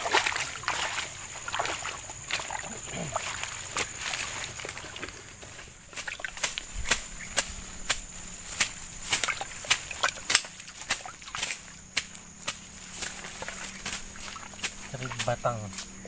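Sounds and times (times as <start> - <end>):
machete slashing through grass: 5.9 - 15.3.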